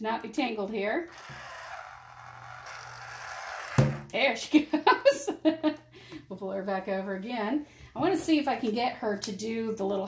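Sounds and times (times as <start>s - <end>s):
toy motor and gears whirring: 1.0s - 3.9s.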